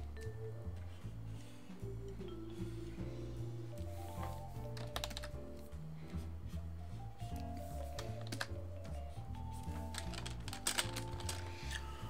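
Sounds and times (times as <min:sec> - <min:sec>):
background music with bass line: 0:00.0 - 0:10.6.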